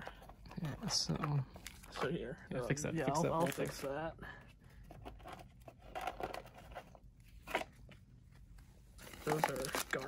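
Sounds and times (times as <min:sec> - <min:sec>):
trading cards rustling: 0:08.9 - 0:10.0.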